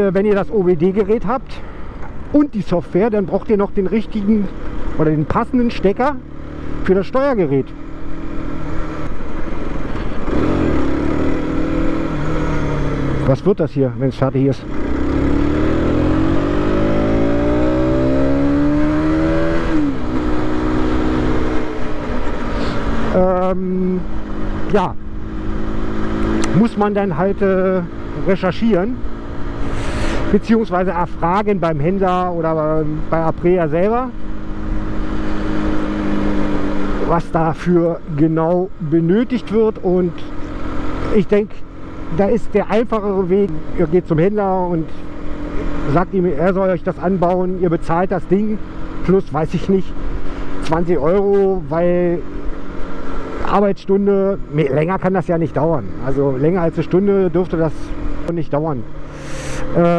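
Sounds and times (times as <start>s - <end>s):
wind and road noise: 0.0s - 59.9s
motorcycle engine running: 3.1s - 13.5s, 14.6s - 59.9s.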